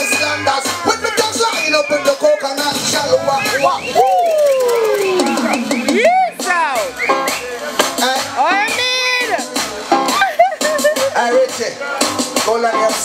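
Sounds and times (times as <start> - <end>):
man singing into microphone: 0.0 - 4.0
backing track with drums: 0.0 - 13.0.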